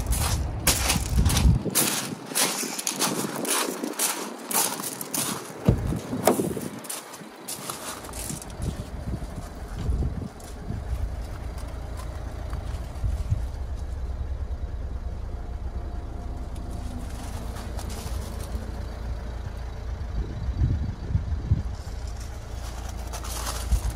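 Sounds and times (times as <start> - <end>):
diesel engine idling: 0.0 - 23.9
soft bumps: 5.2 - 6.9.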